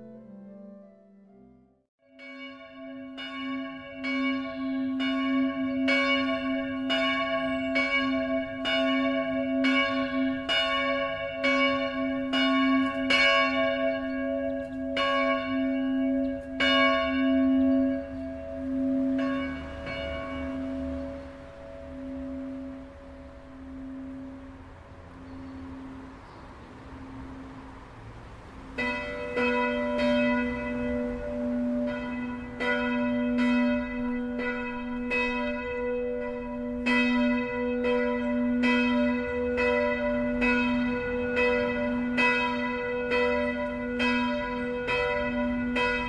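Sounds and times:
church bell ringing: 2.0s - 46.0s.

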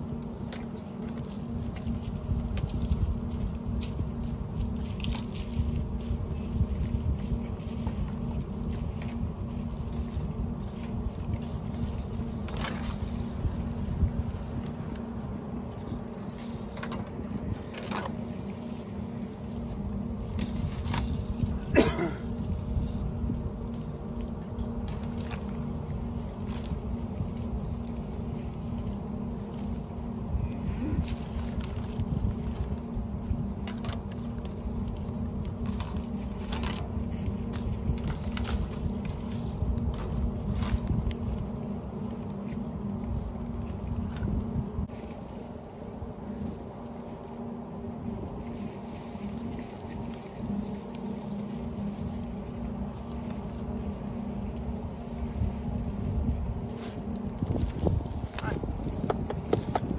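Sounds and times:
wind rumbling on microphone: 0.0s - 59.9s.

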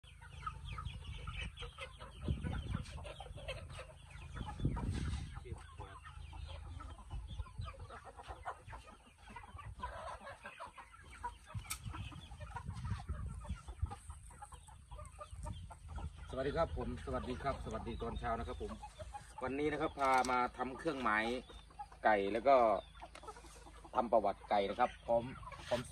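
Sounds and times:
chickens clucking: 0.0s - 25.9s.

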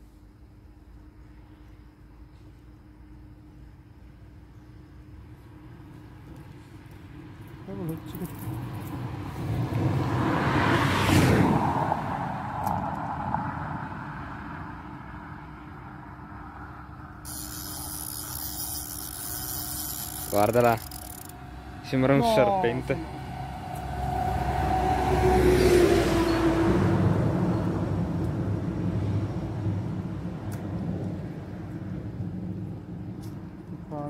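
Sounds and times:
car driving past: 9.0s - 17.2s, 21.4s - 33.0s
steady hiss: 17.2s - 21.3s.

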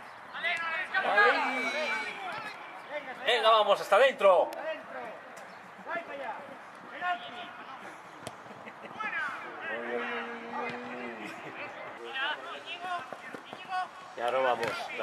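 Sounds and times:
people shouting outdoors: 0.3s - 3.9s, 8.9s - 14.1s.

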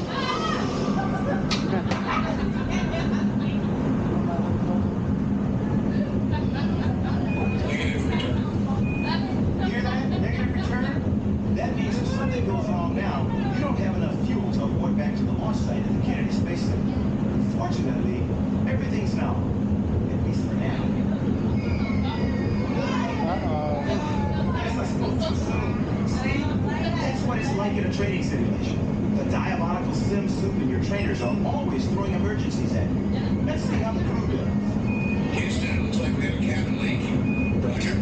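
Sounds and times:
muffled voices: 0.0s - 38.0s
simulated engine roar: 0.0s - 38.0s.

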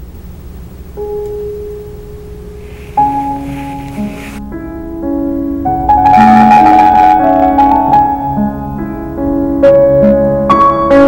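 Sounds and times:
loud piano chord: 1.0s - 11.0s
piano note ringing: 1.0s - 11.0s.

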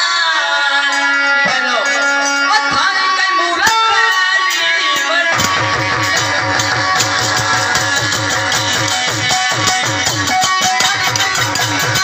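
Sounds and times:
plucked string instrument: 0.8s - 12.0s
fast low drum beat: 5.4s - 12.0s.

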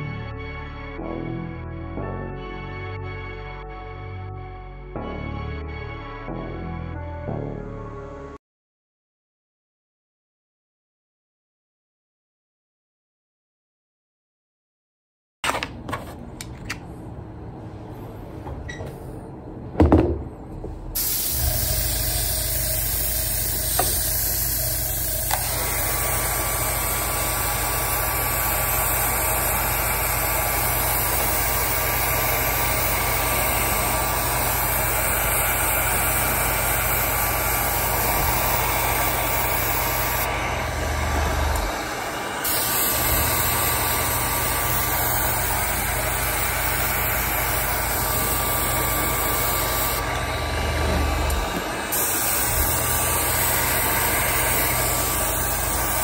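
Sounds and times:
heat gun blowing: 21.0s - 56.0s.

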